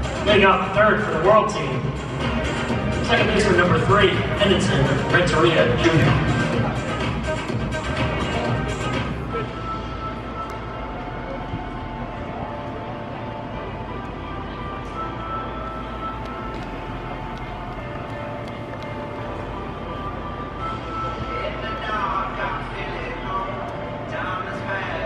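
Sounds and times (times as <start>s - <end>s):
murmur of voices: 0.0s - 25.0s
music with long held tones: 0.0s - 25.0s.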